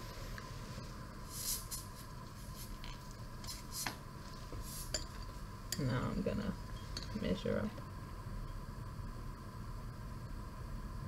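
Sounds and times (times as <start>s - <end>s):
low steady room hum: 0.0s - 11.0s.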